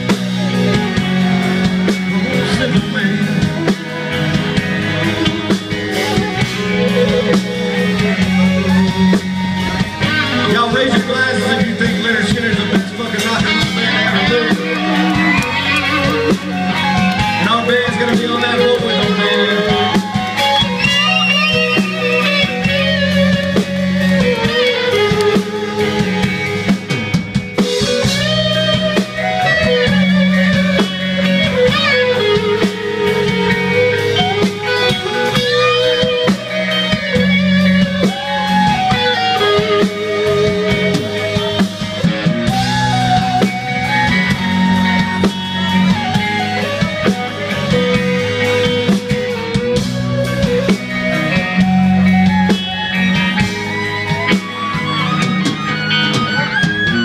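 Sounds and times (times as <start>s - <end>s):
live rock band playing: 0.0s - 57.0s.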